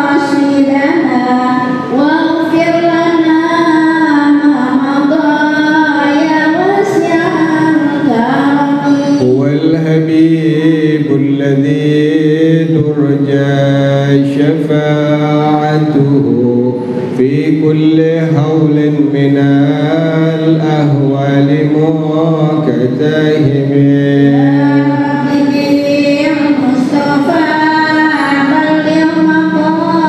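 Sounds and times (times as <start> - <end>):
man singing into a microphone: 8.1 - 25.6.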